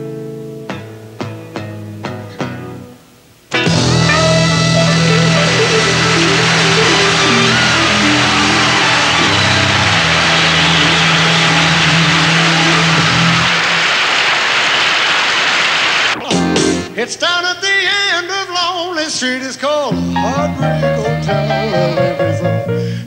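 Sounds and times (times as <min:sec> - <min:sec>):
rock band with horns: 0:03.5 - 0:17.2
audience applauding and cheering: 0:03.6 - 0:16.8.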